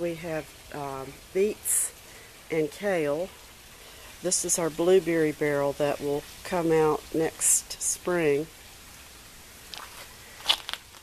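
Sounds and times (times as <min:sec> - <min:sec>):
footsteps on gravel: 0:09.7 - 0:11.0.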